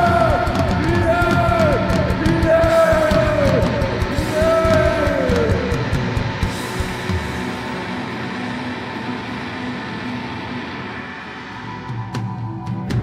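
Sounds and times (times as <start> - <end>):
droning electric guitar: 0.0 - 13.0
rock band playing live: 0.0 - 13.0.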